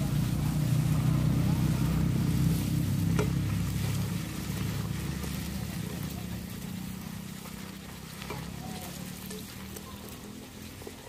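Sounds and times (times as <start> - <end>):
low steady engine hum: 0.0 - 11.0.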